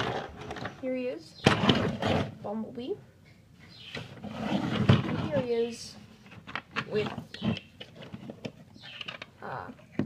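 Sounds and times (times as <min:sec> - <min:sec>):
plastic figures rustling: 0:04.0 - 0:10.0.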